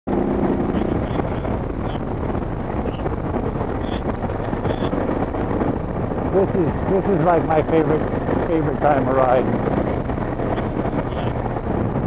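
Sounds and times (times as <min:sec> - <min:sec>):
motorcycle engine running: 0:00.1 - 0:12.0
wind buffeting microphone: 0:00.1 - 0:12.0.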